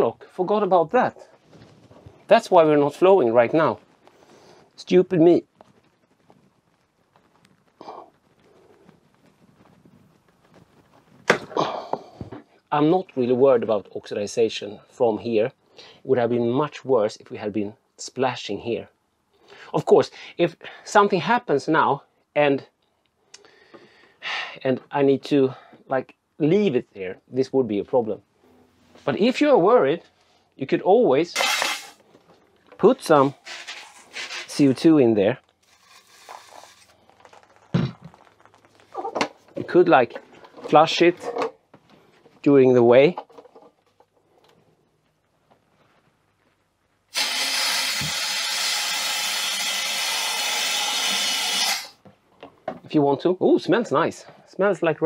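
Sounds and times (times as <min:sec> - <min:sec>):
faint handling rustle: 0:01.2 - 0:11.3, 0:32.0 - 0:47.1.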